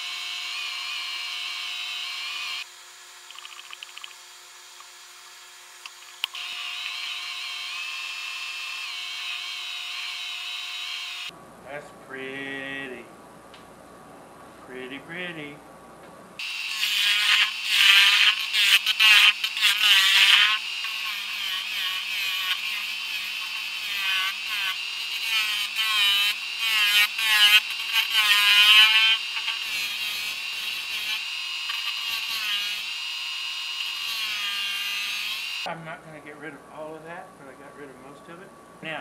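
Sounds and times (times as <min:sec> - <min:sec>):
wood lathe gouge screeching: 0:16.4 - 0:35.7.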